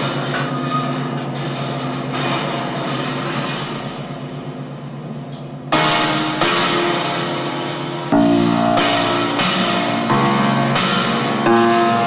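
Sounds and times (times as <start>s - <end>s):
grand piano chords: 5.7s - 12.0s.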